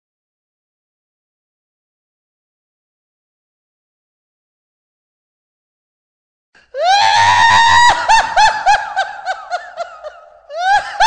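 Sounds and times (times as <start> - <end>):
high-pitched shrieking laugh: 6.8 - 11.0.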